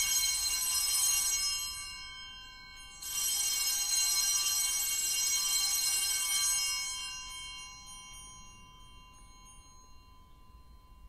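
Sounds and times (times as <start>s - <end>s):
altar bells ringing: 0.0s - 11.0s.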